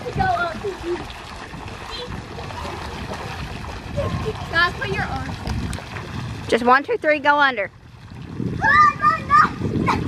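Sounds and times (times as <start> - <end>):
water splashing in pool: 0.0 - 10.0
child calling out: 8.6 - 10.0.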